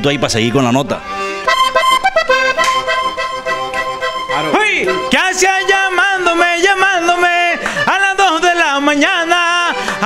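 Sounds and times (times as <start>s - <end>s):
button accordion playing: 0.0s - 10.0s.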